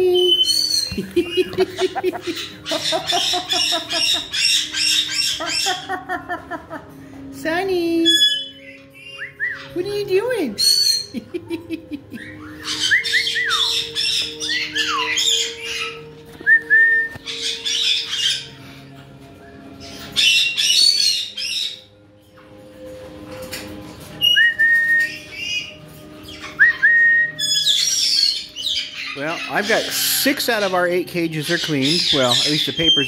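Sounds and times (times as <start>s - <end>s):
parrots squawking: 0.0s - 6.4s, 8.0s - 16.2s, 17.2s - 21.9s, 25.0s - 33.0s
parrot whistled notes: 12.4s - 18.5s, 24.2s - 30.7s.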